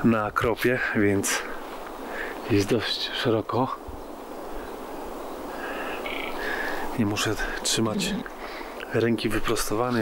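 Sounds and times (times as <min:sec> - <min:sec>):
outdoor hiss: 0:00.0 - 0:10.0
tree branches creaking: 0:04.4 - 0:08.6.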